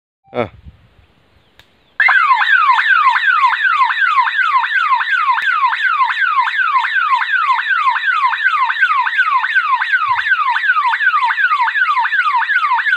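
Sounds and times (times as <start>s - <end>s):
electronic alarm siren whooping: 2.0s - 12.9s.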